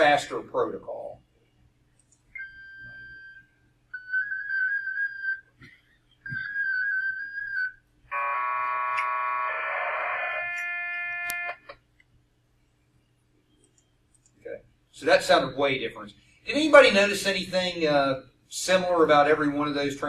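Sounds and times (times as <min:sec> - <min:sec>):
dense chord of data tones: 0:08.1 - 0:11.6.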